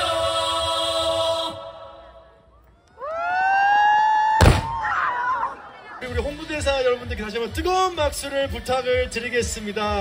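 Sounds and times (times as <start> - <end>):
loud thump: 4.4 - 4.8.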